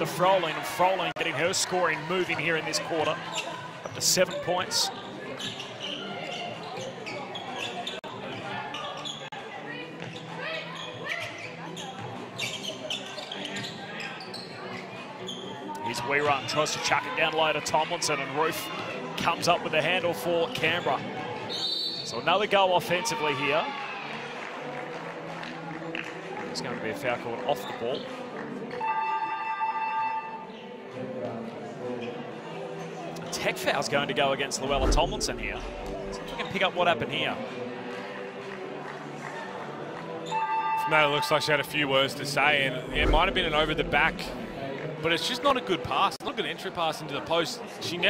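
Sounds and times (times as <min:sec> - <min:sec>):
crowd voices echoing: 0:34.5 - 0:45.6.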